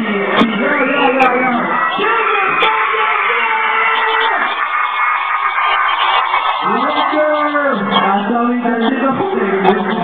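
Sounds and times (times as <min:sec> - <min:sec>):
live music: 0:00.0 - 0:10.0.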